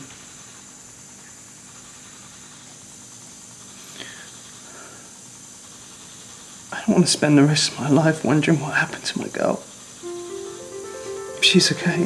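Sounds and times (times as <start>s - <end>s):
faint background hiss: 8.1s - 12.0s.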